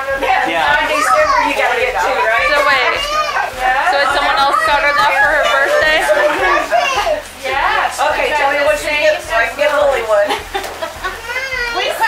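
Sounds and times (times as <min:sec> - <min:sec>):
young children's voices: 0:00.0 - 0:08.2, 0:11.0 - 0:12.0.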